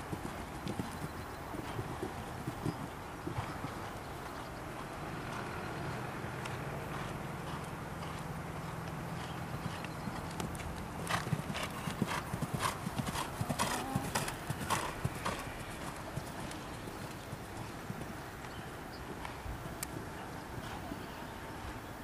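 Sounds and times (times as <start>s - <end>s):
horse hooves cantering on sand: 0.0s - 20.8s.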